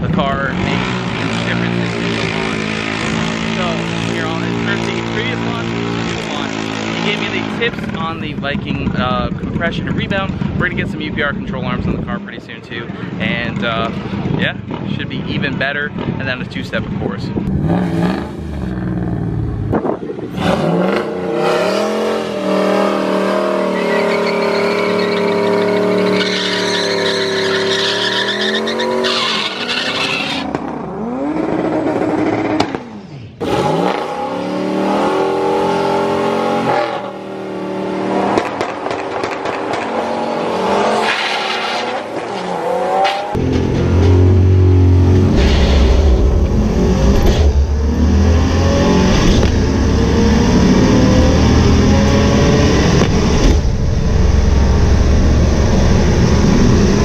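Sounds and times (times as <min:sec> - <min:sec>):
engine revving: 0:00.0 - 0:09.0, 0:17.4 - 0:57.0.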